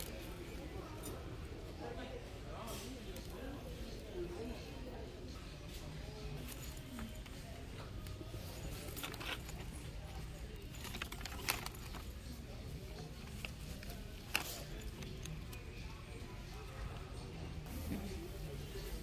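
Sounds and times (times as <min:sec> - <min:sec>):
low store background: 0:00.0 - 0:19.0.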